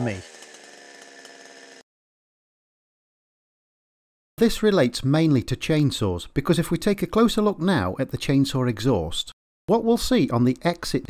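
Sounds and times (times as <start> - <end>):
chainsaw engine running: 0.0 - 1.8.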